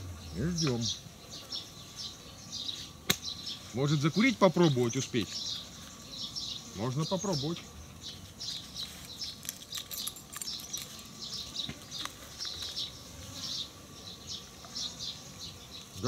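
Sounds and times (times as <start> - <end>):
insects buzzing: 0.0 - 16.0
small birds chirping: 0.0 - 16.0.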